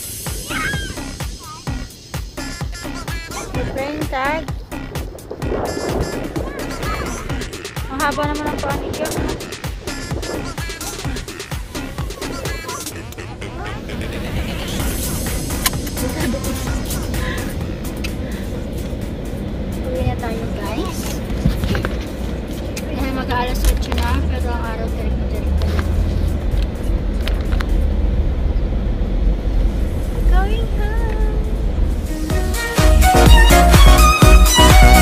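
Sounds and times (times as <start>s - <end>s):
background music: 0.0s - 20.9s, 32.0s - 35.0s
car interior rumble: 0.0s - 32.6s
voices: 0.4s - 26.0s, 30.1s - 31.8s.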